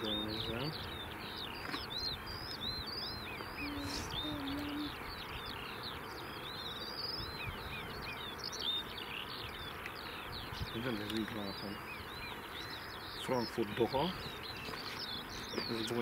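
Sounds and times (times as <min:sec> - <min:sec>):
small birds chirping and singing: 0:00.0 - 0:16.0.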